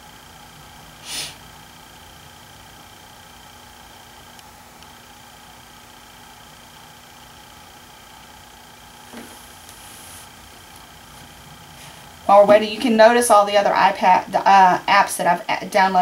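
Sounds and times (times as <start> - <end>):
faint hum: 0.0 - 16.0
thin high whine: 0.0 - 16.0.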